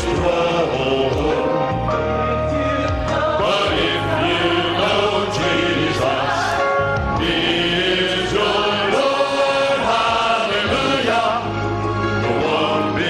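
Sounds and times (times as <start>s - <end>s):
male vocal group singing: 0.0s - 13.0s.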